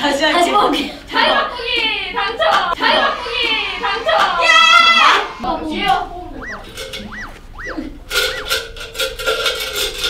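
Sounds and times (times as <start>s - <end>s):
comic whistle tones: 3.2s - 8.8s
held tone: 3.7s - 8.8s
metal spoons clattering in tin can: 8.2s - 10.0s.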